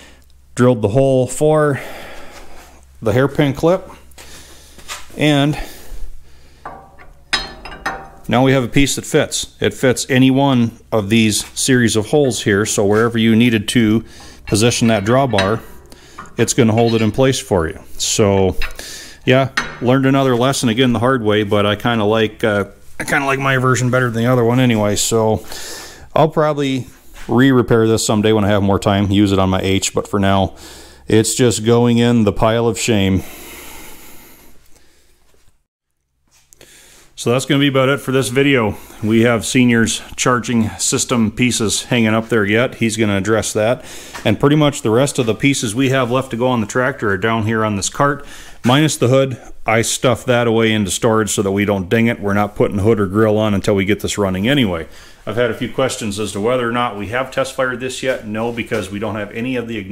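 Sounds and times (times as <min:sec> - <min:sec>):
steel parts clinking: 0:06.6 - 0:08.6, 0:12.2 - 0:20.5.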